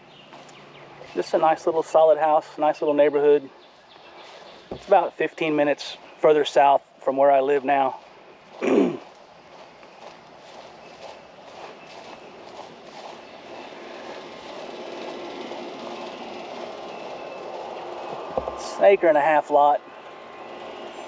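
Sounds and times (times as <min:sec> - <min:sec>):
vehicle rumble: 0:00.0 - 0:21.0
man clearing throat: 0:08.6 - 0:09.1.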